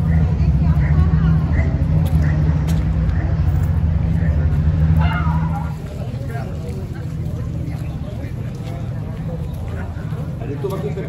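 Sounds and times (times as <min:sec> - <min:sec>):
faint voices of passers-by: 0:00.0 - 0:11.0
vehicle engine running: 0:00.0 - 0:11.0.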